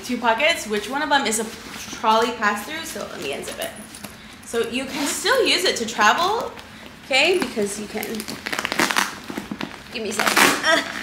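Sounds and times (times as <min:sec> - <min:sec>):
nylon bag rustling and crinkling: 0:07.4 - 0:11.0.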